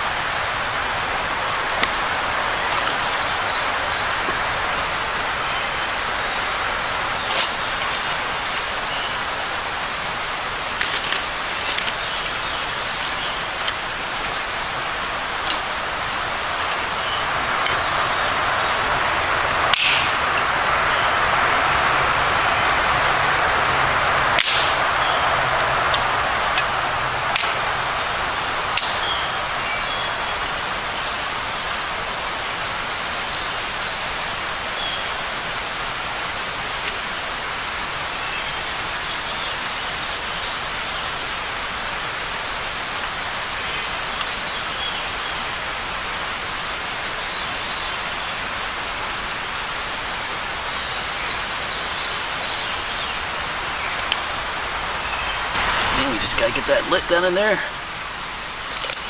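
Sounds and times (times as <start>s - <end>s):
kindling sticks snapping: 1.7s - 3.4s, 7.0s - 9.4s, 10.6s - 18.0s, 19.7s - 20.2s, 24.3s - 25.0s, 25.8s - 27.8s, 28.7s - 29.3s, 58.6s - 59.0s
outdoor rushing noise: 13.7s - 32.7s.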